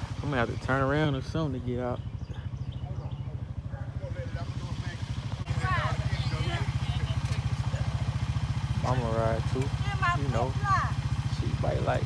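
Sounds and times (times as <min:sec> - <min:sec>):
engine idling: 0:00.0 - 0:12.0
voices: 0:00.0 - 0:12.0.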